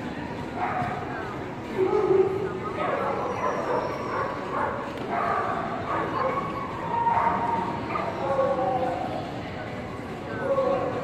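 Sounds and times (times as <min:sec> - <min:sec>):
crowd chatter in hall: 0:00.0 - 0:11.0
dog yipping and whining: 0:03.0 - 0:04.4.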